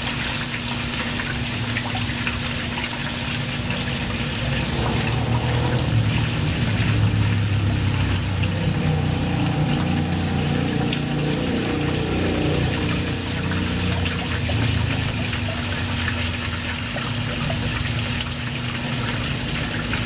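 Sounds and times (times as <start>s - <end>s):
low motor hum: 0.0s - 20.0s
water splashing and bubbling: 0.0s - 20.0s.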